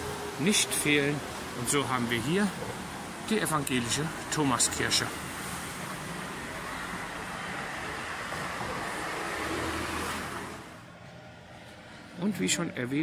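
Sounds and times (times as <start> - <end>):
car passing: 4.0 - 12.3.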